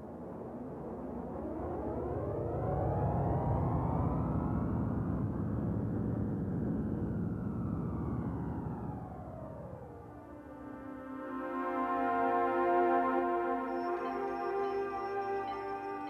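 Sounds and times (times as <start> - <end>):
low rumbling drone: 2.0 - 16.0
sweeping tones: 10.3 - 16.0.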